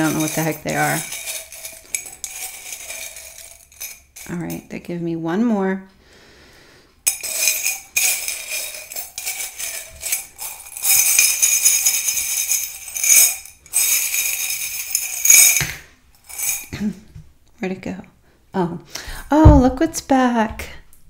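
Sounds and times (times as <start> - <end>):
metal charms jingling: 0.0 - 4.6, 7.1 - 16.8.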